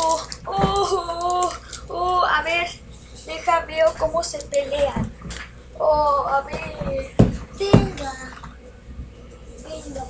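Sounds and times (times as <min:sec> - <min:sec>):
sharp knocks: 0:06.6 - 0:08.0.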